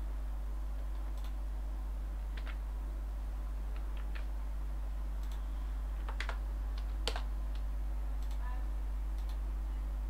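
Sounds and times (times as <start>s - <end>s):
low electrical hum: 0.0s - 10.0s
computer keys and mouse clicking: 0.8s - 1.4s, 2.3s - 2.6s, 3.7s - 4.3s, 5.2s - 8.5s, 9.1s - 9.4s.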